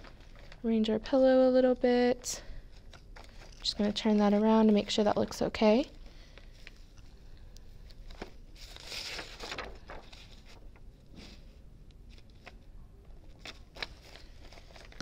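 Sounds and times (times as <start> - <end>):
plastic sheet crinkling: 7.9 - 12.6, 13.2 - 15.0.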